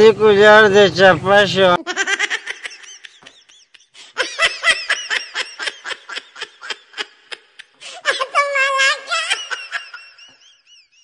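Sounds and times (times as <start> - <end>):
high-pitched laughter: 1.8 - 11.0.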